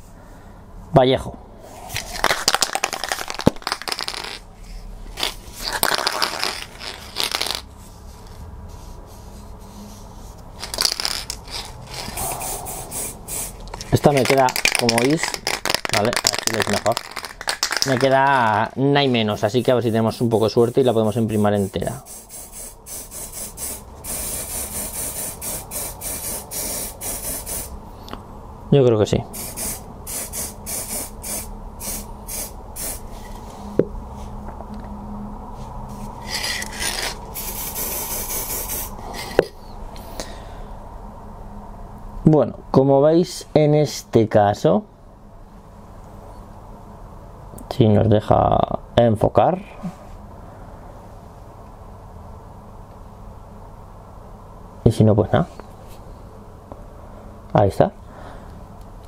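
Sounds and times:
aerosol can ball rattling: 0:02.0 - 0:04.4, 0:05.2 - 0:07.7, 0:10.6 - 0:18.6
aerosol can spraying bursts: 0:10.6 - 0:18.0, 0:20.7 - 0:27.7, 0:29.4 - 0:33.0, 0:37.4 - 0:39.0.

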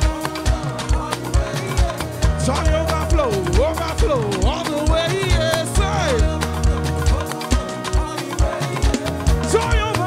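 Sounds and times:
live band dance groove: 0:00.0 - 0:10.0
person singing: 0:00.0 - 0:10.0.

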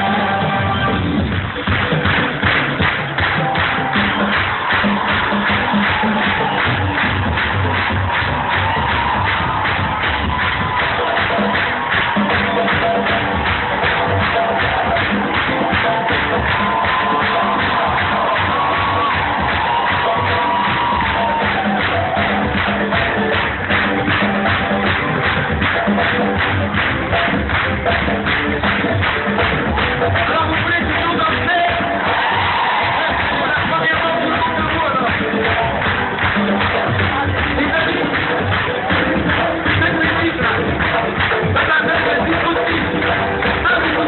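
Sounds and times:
live band music through pa: 0:00.0 - 0:44.0.

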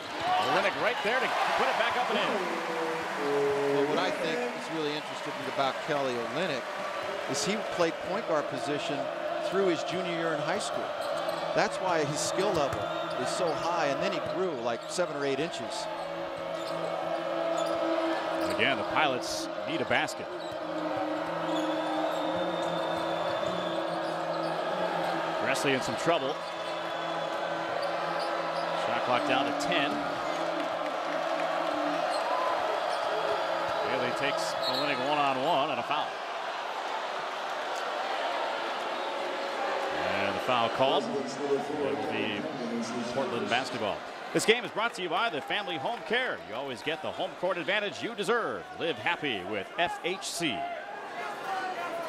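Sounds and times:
crowd noise: 0:00.0 - 0:52.0.

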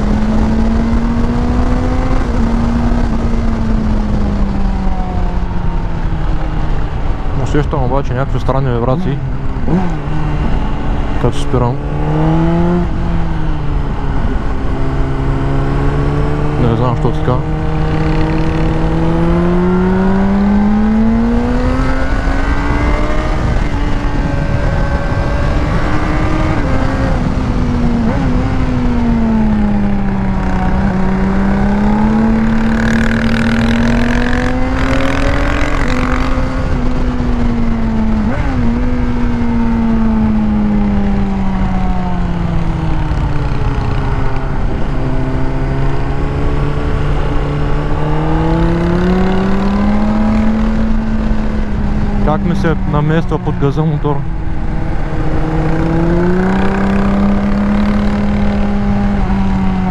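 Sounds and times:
motorcycle engine at mid revs: 0:00.0 - 0:07.3, 0:08.8 - 0:59.9
wind noise: 0:00.0 - 0:07.5, 0:17.4 - 0:53.5, 0:54.2 - 0:59.9.

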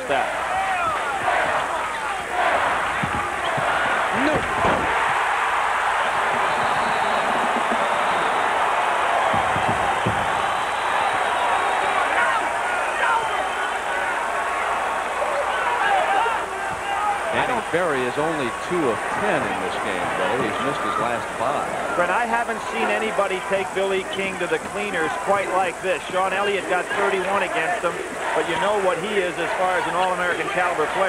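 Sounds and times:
arena crowd din: 0:00.0 - 0:31.0
knocks from basketball court: 0:09.3 - 0:10.4.

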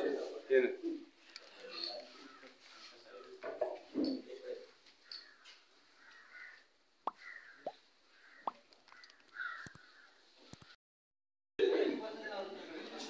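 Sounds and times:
distant bird caws: 0:05.0 - 0:10.8.

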